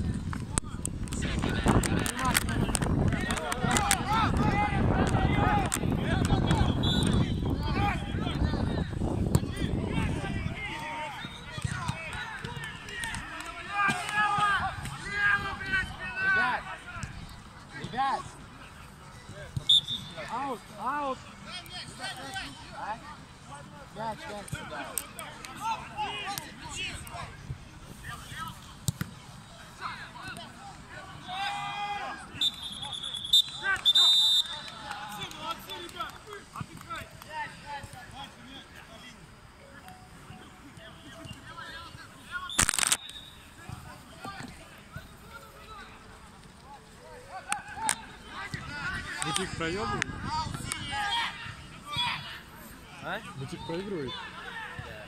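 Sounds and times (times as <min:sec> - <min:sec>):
players shouting: 0:03.1 - 0:08.6, 0:09.4 - 0:17.2, 0:23.9 - 0:27.4, 0:29.5 - 0:39.0, 0:46.9 - 0:55.0
referee's whistle: 0:06.5 - 0:07.8, 0:11.1 - 0:11.7, 0:19.6 - 0:20.3, 0:32.2 - 0:35.0, 0:39.9 - 0:43.6.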